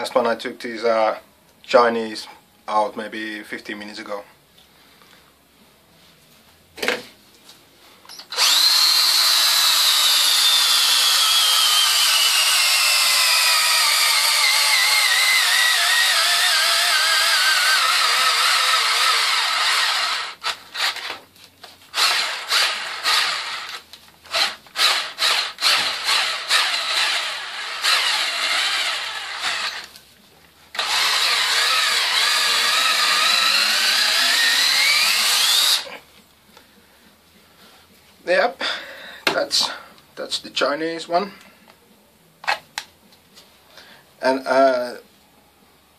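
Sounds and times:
cordless drill boring into log: 8.3s - 21.2s, 22.0s - 29.9s, 30.8s - 35.9s.

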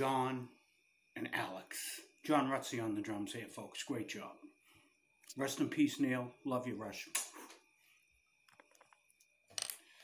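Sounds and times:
faint high whine: 0.0s - 10.0s.

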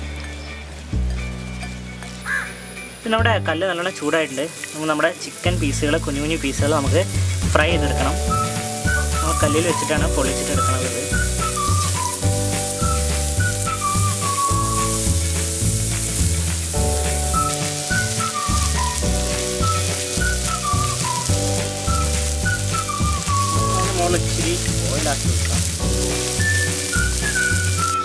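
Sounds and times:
background music: 0.0s - 28.0s
chicken sizzling on griddle: 3.8s - 28.0s.

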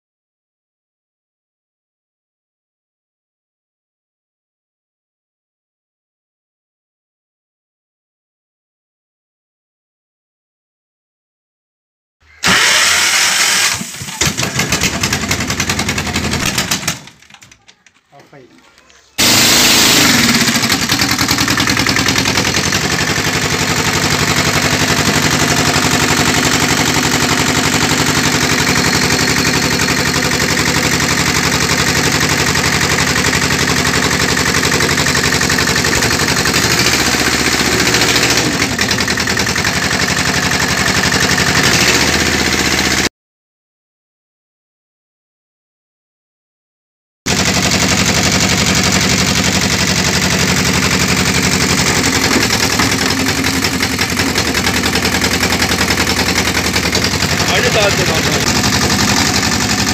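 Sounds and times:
firewood splitter engine running: 12.3s - 43.1s, 47.3s - 59.9s.

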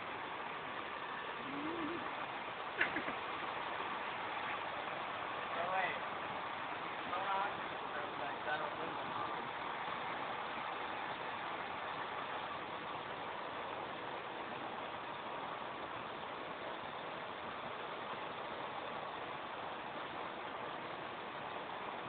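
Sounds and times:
server fans whirring: 0.0s - 22.0s.

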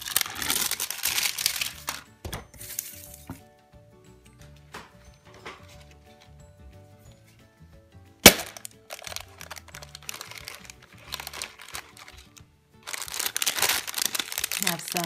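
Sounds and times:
foil packets rustling: 0.0s - 3.3s, 8.2s - 15.0s
plastic egg snapping open: 8.2s - 14.6s.

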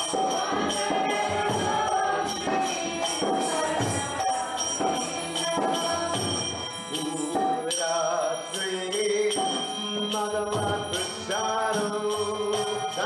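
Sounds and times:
metal hand cymbals ringing: 0.0s - 13.0s.

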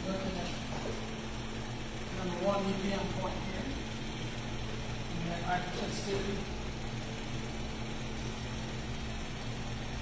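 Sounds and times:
low mechanical hum of machine: 0.0s - 10.0s.

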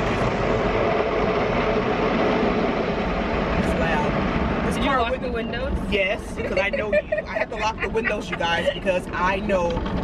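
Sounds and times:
car wash machinery: 0.0s - 10.0s.

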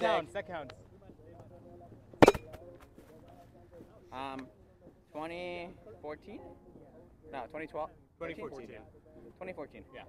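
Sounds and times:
ball hitting trampoline net: 2.2s - 2.6s.

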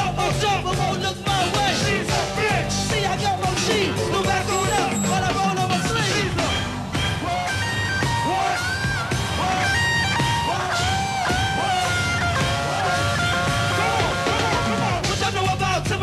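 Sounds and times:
bass backing: 0.0s - 16.0s.

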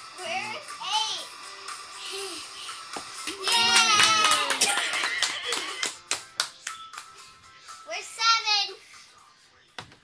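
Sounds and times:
child clapping hands: 3.2s - 7.1s.

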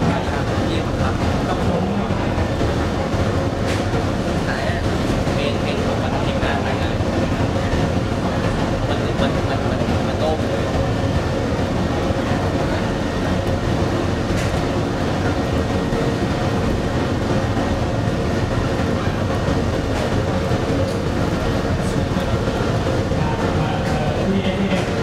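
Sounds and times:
furnace flame and blower rumble: 0.0s - 25.0s.

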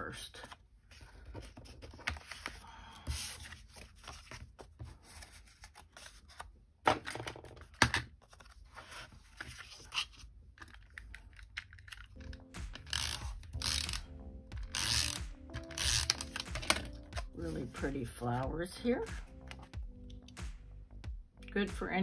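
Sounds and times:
background music: 11.7s - 22.0s.

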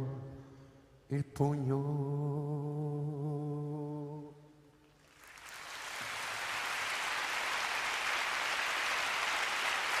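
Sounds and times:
audience applauding: 5.0s - 10.0s.

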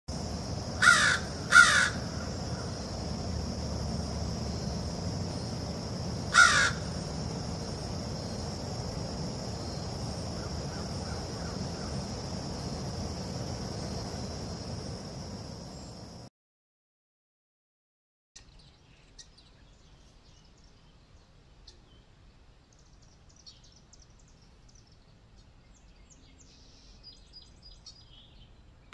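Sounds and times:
steady high-pitched hum: 0.1s - 16.3s
crows cawing: 0.8s - 2.8s, 6.3s - 7.1s.

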